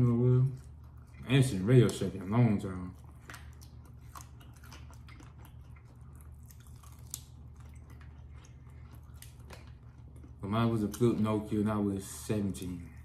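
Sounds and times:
chewing and biting: 0:00.1 - 0:11.7
wet mouth clicks and smacks: 0:03.0 - 0:11.1.

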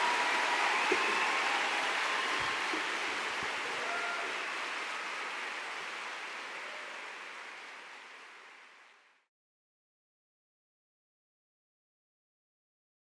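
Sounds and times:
audience applauding: 0:00.0 - 0:09.3.

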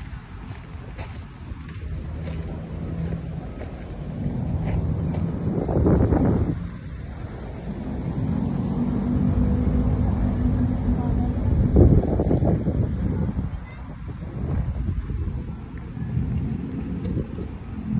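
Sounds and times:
steady low hum: 0:00.0 - 0:17.9
wind buffeting microphone: 0:00.0 - 0:17.9.

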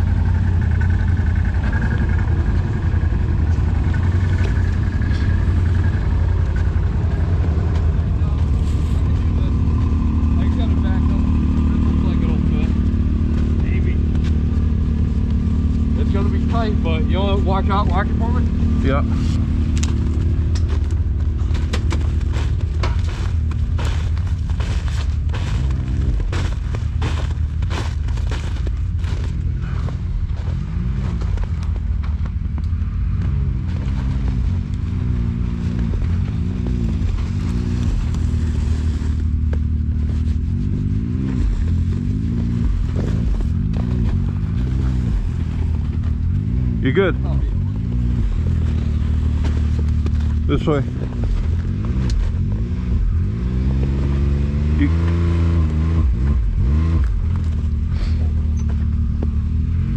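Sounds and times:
utility vehicle engine idling: 0:00.0 - 0:55.1, 0:56.4 - 0:59.9
engine revving in blips: 0:00.0 - 0:59.9
sharp snaps and crackles: 0:19.4 - 0:46.6.

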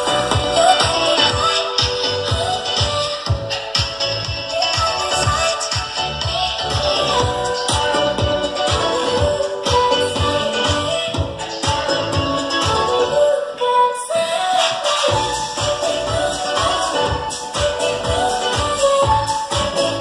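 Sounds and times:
music with steady beat: 0:00.0 - 0:13.3, 0:14.3 - 0:20.0.

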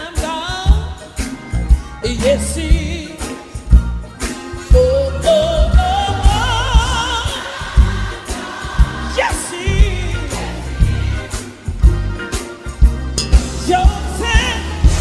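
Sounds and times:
band accompaniment: 0:00.0 - 0:15.0
gospel lead singer with vibrato: 0:00.0 - 0:15.0.

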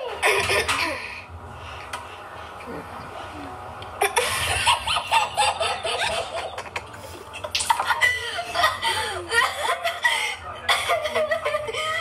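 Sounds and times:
child laughing: 0:04.0 - 0:12.0.

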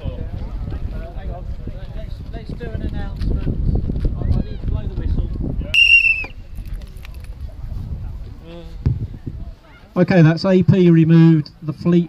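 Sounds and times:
low crowd murmur: 0:00.0 - 0:12.0
whistle blast: 0:05.8 - 0:06.4.

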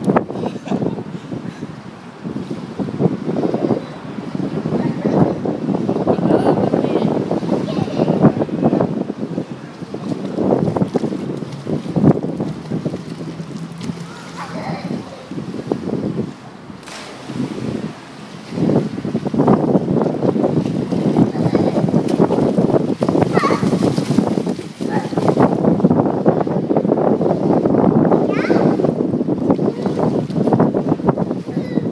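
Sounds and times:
pool water splashing: 0:00.0 - 0:31.9
wind buffeting microphone: 0:00.0 - 0:31.9.

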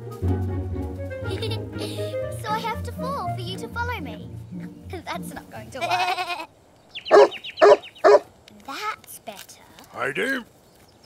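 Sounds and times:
cartoon dog barking: 0:07.1 - 0:08.2.

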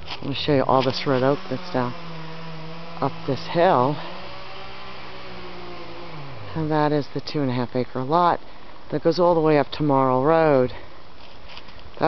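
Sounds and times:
distant chainsaw running: 0:00.6 - 0:07.5.

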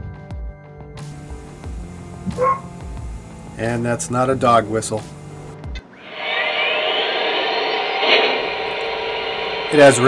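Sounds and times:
steam hiss: 0:05.1 - 0:10.0.

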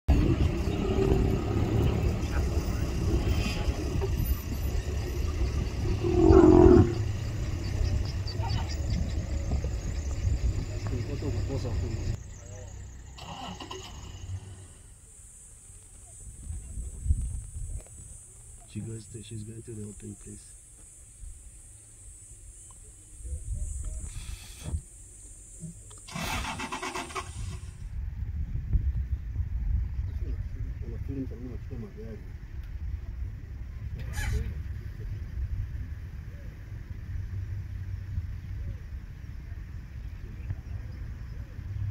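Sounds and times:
vehicle engine idling: 0:00.1 - 0:16.3
vehicle engine rumble: 0:00.1 - 0:41.9
engine turning over and starting: 0:13.1 - 0:14.8, 0:26.0 - 0:27.9.

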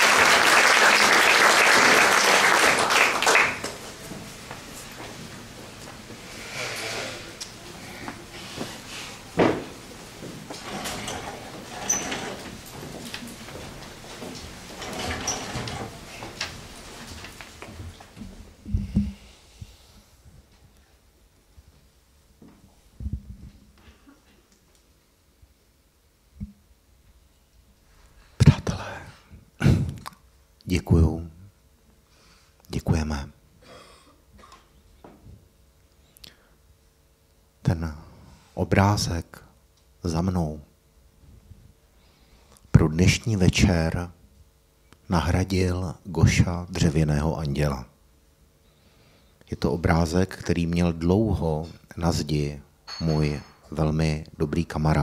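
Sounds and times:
low room murmur: 0:00.0 - 0:55.0
man speaking into a microphone: 0:32.7 - 0:33.4, 0:42.8 - 0:44.2, 0:45.1 - 0:47.9, 0:49.5 - 0:55.0.

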